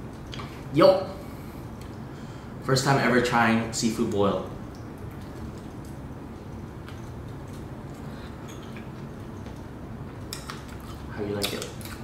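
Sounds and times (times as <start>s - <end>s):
low room hum: 0.0s - 12.0s
person chewing food: 4.7s - 12.0s.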